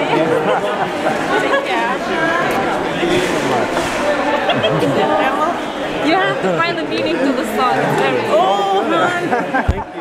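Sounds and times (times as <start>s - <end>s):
crowd chatter in a large hall: 0.0s - 10.0s.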